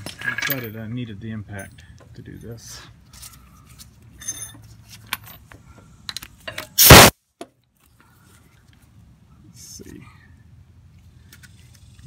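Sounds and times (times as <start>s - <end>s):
metal clinks and scrapes: 0.0s - 0.9s, 1.6s - 5.5s
impact wrench burst: 6.8s - 7.1s.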